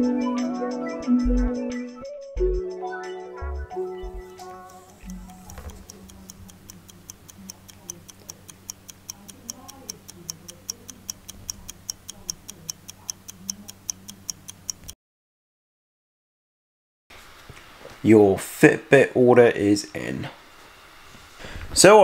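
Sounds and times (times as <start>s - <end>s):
lo-fi background music: 0.0s - 6.7s
clock ticking: 4.2s - 15.0s.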